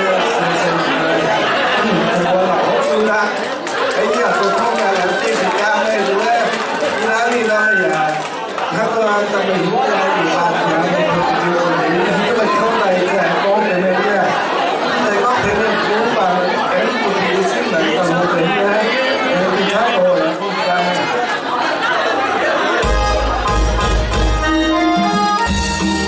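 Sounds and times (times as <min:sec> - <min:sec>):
crowd chatter in a hall: 0:00.0 - 0:26.0.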